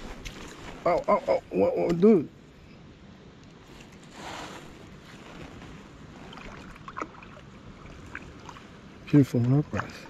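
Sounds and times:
steady wind: 0.0 - 10.0
water noise: 3.5 - 10.0.

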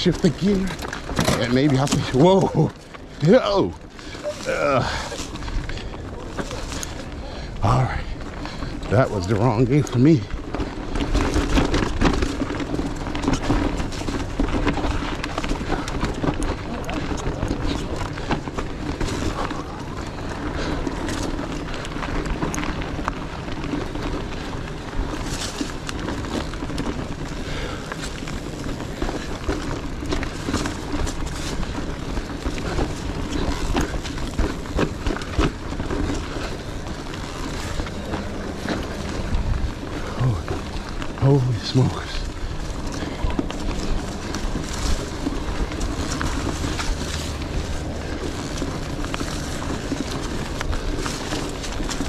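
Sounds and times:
bike rattling and clicking: 0.0 - 52.0
tyres crunching over leaves and stones: 0.0 - 52.0.

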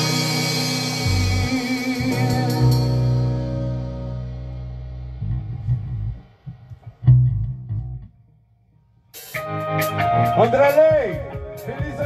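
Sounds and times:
guitar and bass chord ringing: 0.0 - 8.3, 9.3 - 11.2
plucked bass guitar notes: 0.0 - 12.0.

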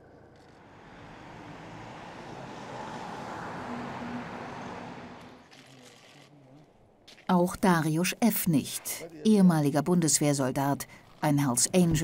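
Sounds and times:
vehicle passing: 0.0 - 6.7.

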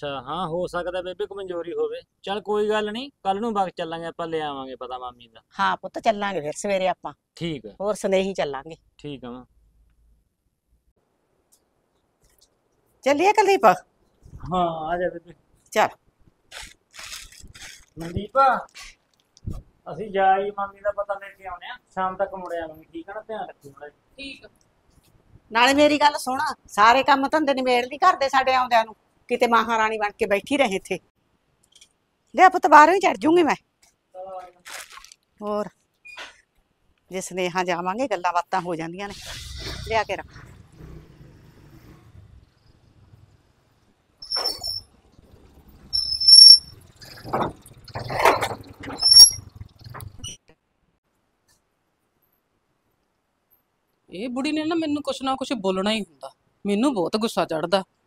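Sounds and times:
small motorcycle engine: 40.4 - 43.8
short high-pitched squeal: 44.2 - 44.9, 46.0 - 46.8, 49.0 - 49.5.

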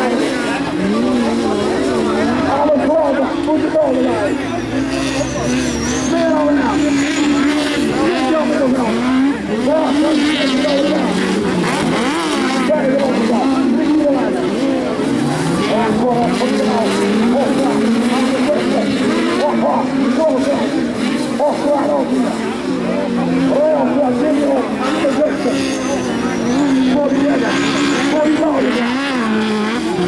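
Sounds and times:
race car engines accelerating: 0.0 - 30.0.

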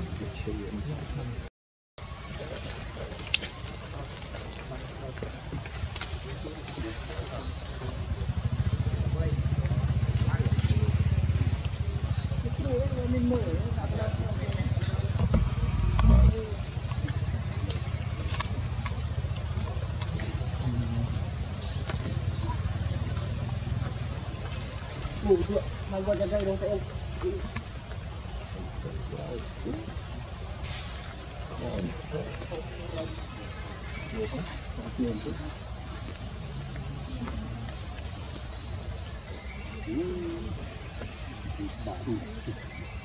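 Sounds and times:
faint voices: 0.0 - 43.0
low rumble: 7.5 - 25.9
vehicle engine passing by: 7.8 - 25.9
short burst of hiss: 30.6 - 31.1.

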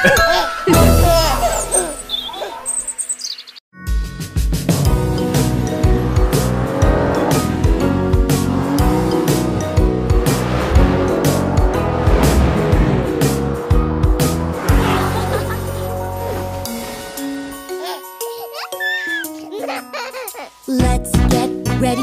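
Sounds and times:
cartoon music with drum beat: 3.9 - 14.6, 20.6 - 22.0
race car engine revving: 5.0 - 17.1.

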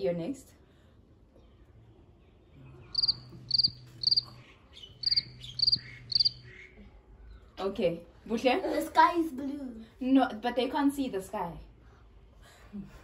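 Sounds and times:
faint low hum: 0.0 - 13.0
cricket chirping: 2.9 - 4.4, 5.0 - 6.4.

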